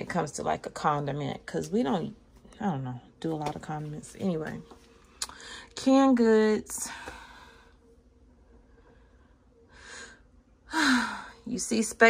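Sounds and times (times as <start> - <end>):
woman breathing: 5.2 - 5.8, 6.8 - 11.5.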